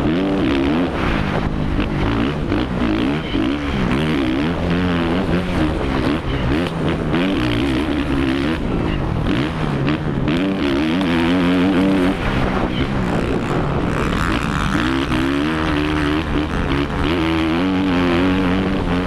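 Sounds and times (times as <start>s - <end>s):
motocross engine revving: 0.0s - 19.0s
wind rushing over camera: 0.0s - 19.0s.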